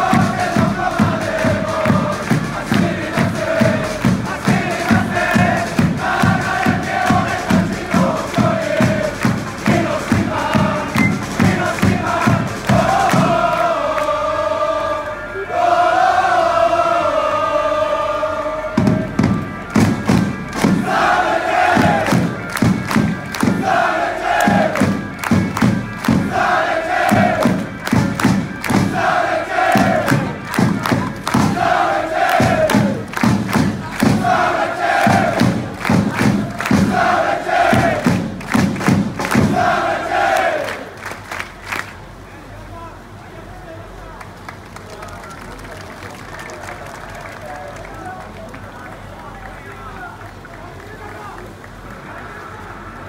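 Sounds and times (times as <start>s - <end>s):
steady thudding beat: 0.0s - 13.8s, 18.7s - 40.3s
crowd chanting: 0.0s - 41.0s.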